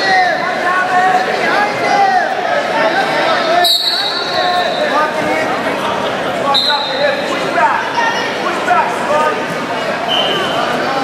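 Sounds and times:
crowd chatter: 0.0s - 11.0s
referee's whistle blast: 3.6s - 4.8s, 6.5s - 7.0s.

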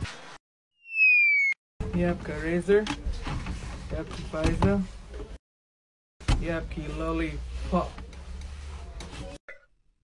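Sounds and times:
descending whistle sound effect: 0.8s - 1.6s.

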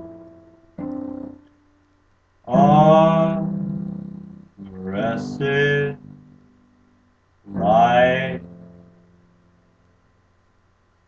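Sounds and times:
man singing a held note: 2.5s - 6.2s, 7.5s - 8.5s.

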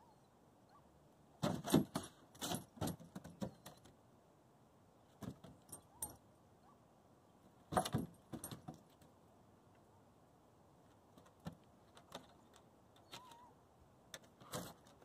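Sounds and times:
dog collar tags jingling: 5.6s - 6.2s.

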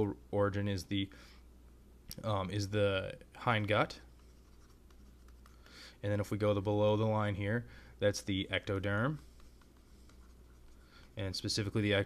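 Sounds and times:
stylus scratching on tablet: 3.6s - 5.8s, 8.4s - 12.0s.

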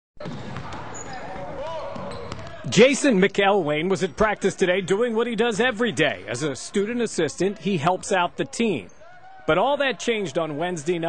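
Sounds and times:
basketballs bouncing on gym floor: 0.2s - 2.6s.

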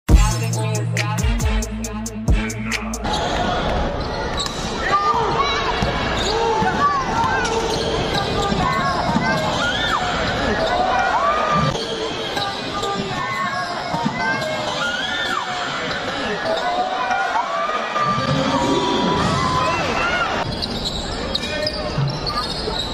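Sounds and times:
hip hop music: 0.1s - 3.3s
murmur of crowd: 0.1s - 22.9s
sneaker squeaks on court: 3.0s - 4.7s, 5.8s - 6.8s, 7.4s - 10.8s, 20.4s - 22.9s.

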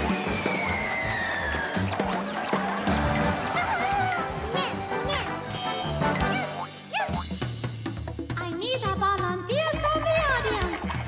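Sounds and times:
cartoon background music: 0.0s - 11.0s.

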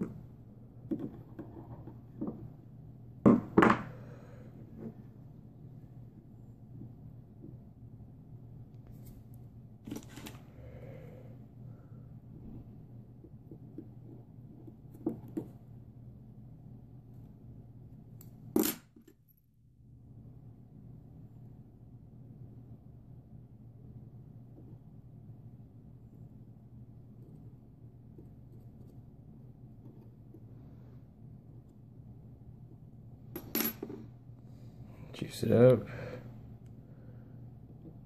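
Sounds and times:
faint low hum: 0.0s - 38.0s.

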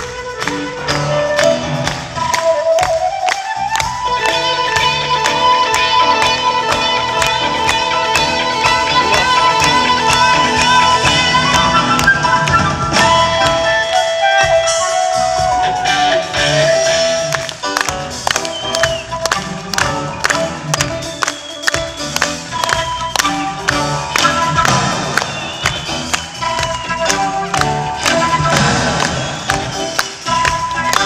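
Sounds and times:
drums: 0.0s - 31.0s
flute melody: 0.0s - 31.0s.

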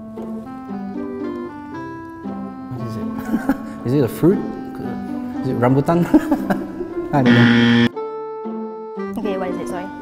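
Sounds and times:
background music: 0.0s - 10.0s
wrong answer buzzer: 7.2s - 7.9s.

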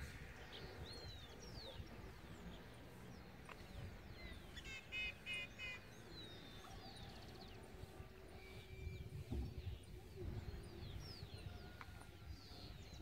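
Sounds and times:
loud repeated bird calls: 2.9s - 7.6s.

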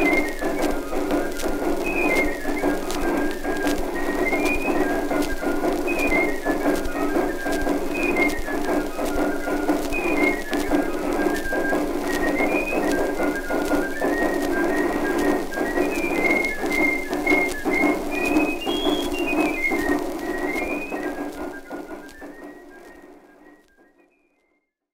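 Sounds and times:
musical accompaniment: 0.0s - 23.7s
old recording crackle: 0.0s - 23.7s
whistled tune: 0.0s - 24.7s.

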